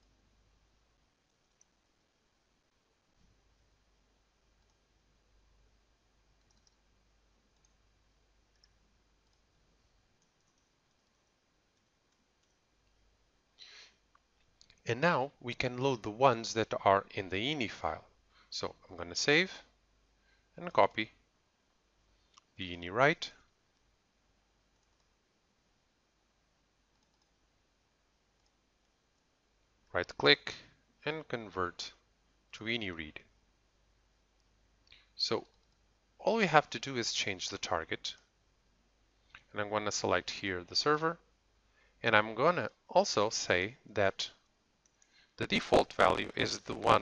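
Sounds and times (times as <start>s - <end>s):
computer mouse clicks: 1.3s - 1.8s, 4.6s - 4.8s, 6.4s - 6.8s, 7.6s - 7.8s, 8.5s - 9.5s, 10.2s - 13.0s, 24.8s - 25.2s, 26.9s - 27.4s, 34.4s - 35.8s, 44.8s - 45.3s.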